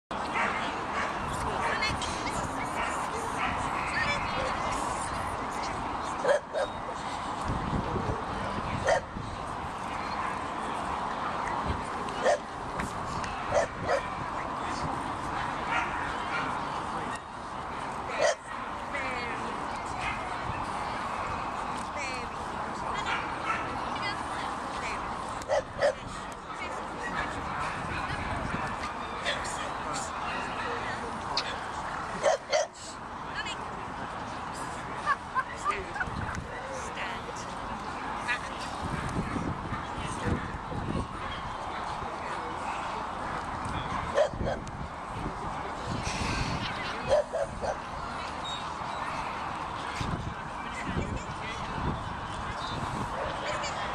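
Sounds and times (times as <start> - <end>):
background chatter: 0.1 - 53.9
murmur of people talking: 0.1 - 53.9.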